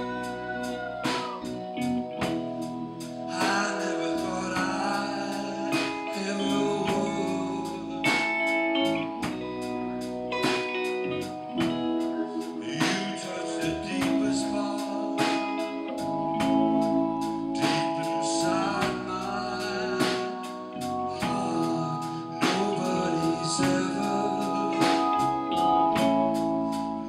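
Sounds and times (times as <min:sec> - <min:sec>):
drums keeping steady beat: 0:00.0 - 0:27.0
electric guitar: 0:00.0 - 0:27.0
piano: 0:00.0 - 0:27.0.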